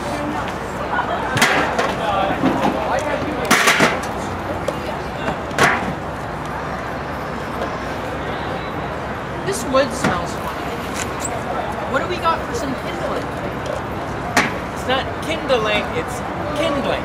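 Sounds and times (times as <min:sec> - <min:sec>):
far-off voices: 0:00.0 - 0:17.0.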